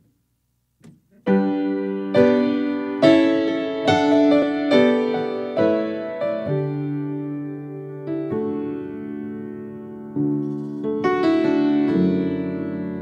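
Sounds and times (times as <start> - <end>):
slow piano chords: 1.1 - 13.0.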